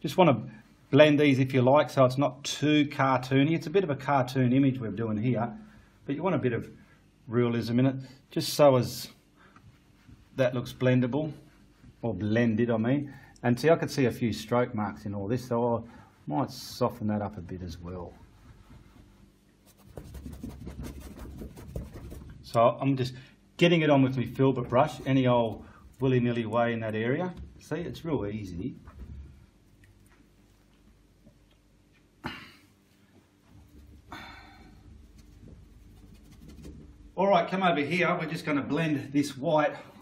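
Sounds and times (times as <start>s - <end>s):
low steady hum: 0.0s - 40.0s
brush scrubbing paint on canvas: 8.8s - 12.4s, 18.0s - 22.6s, 33.3s - 34.1s, 34.7s - 37.1s.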